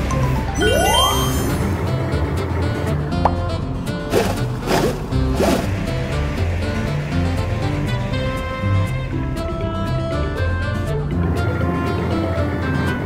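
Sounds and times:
cartoon background music: 0.0 - 13.0
falling squeaky sound effects: 0.5 - 1.9
rising whistle sound effect: 0.6 - 1.8
short tone: 0.6 - 1.8.

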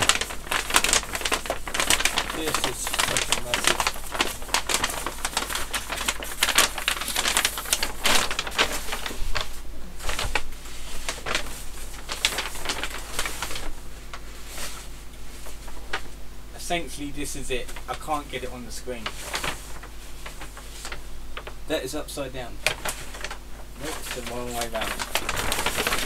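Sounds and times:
poster sheet crinkling and rustling: 0.0 - 26.0.

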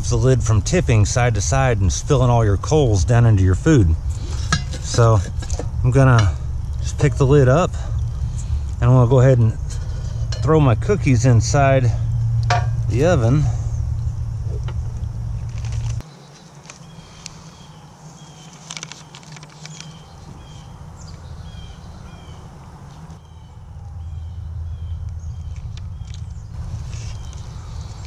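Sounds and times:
low rumble: 0.0 - 16.0, 19.9 - 28.0
bird chirping: 0.0 - 28.0
plastic package crinkling: 18.4 - 20.0.

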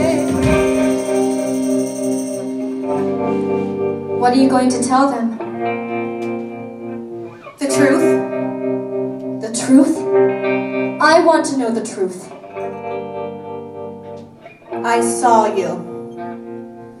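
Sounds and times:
woman singing into microphone: 0.0 - 1.0
rock band sustained chords: 0.0 - 17.0.

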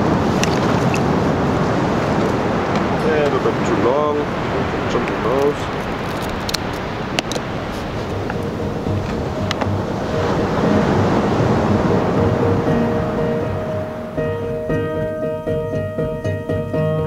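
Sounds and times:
surf: 0.0 - 17.0
wind noise on microphone: 0.0 - 17.0
background music: 8.2 - 17.0.

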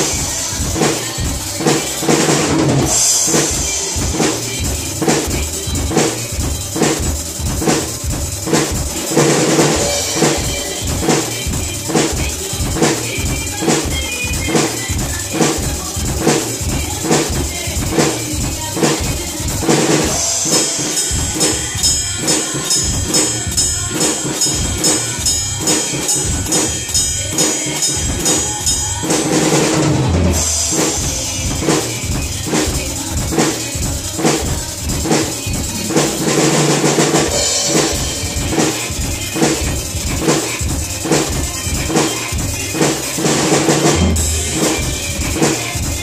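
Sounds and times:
fast high ticking pattern: 0.0 - 29.6, 30.3 - 46.0
drum kit rock beat: 0.0 - 46.0
song playback: 0.0 - 46.0.

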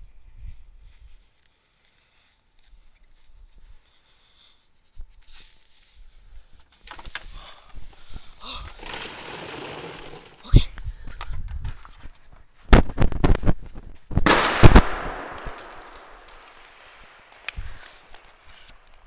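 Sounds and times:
plastic balls rustling into can: 6.9 - 10.7
bottle bursting bang: 14.3 - 16.2.

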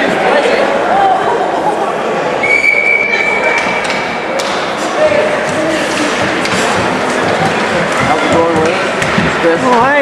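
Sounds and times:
spectator chatter: 0.0 - 10.0.

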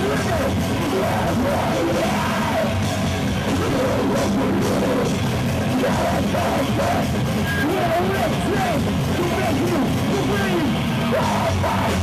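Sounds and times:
heavy band playing live: 0.0 - 12.0
people shouting: 0.0 - 12.0.

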